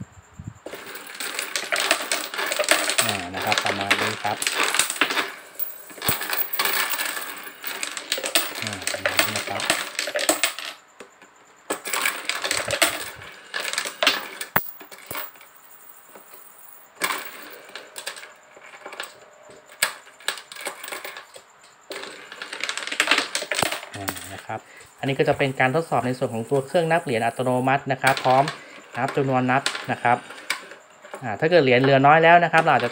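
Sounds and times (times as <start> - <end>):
coins clattering and jingling: 0.7 - 10.8, 11.7 - 18.2, 19.8 - 21.2, 22.0 - 24.4, 25.4 - 28.5.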